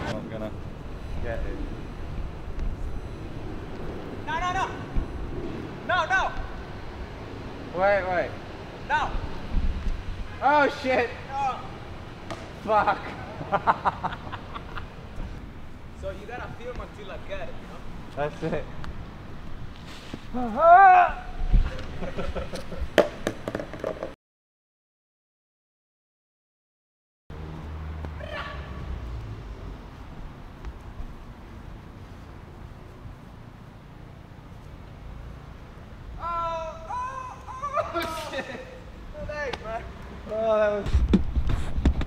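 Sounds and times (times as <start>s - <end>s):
wind buffeting microphone: 0.0s - 10.4s
people laughing: 12.6s - 14.9s, 21.7s - 22.9s, 37.4s - 38.9s
frisbee clacking on paving: 21.8s - 24.2s.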